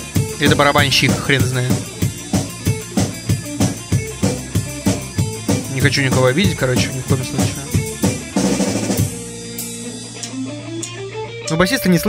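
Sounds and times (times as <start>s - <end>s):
drum kit hits: 0.0s - 10.4s
rock band playing heavy metal: 0.0s - 12.0s
ringing guitar chord: 6.3s - 12.0s.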